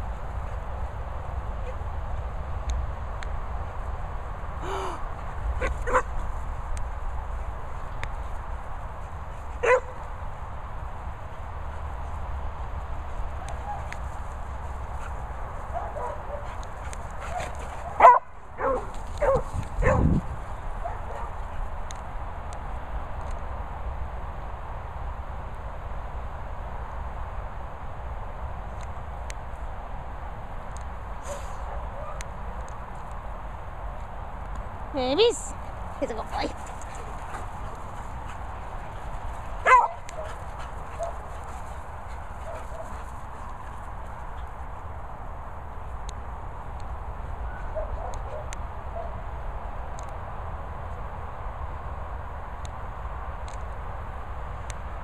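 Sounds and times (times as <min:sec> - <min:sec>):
dog barking: 0:05.6 - 0:06.1, 0:09.6 - 0:10.0, 0:15.7 - 0:16.5, 0:17.2 - 0:20.1, 0:20.8 - 0:21.4, 0:39.6 - 0:41.3
dog yipping: 0:09.6 - 0:09.9, 0:18.0 - 0:20.0, 0:39.6 - 0:40.3.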